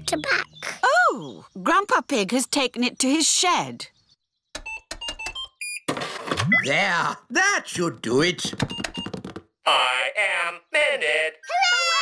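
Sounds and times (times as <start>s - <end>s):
computer keys typing: 8.5s - 9.4s.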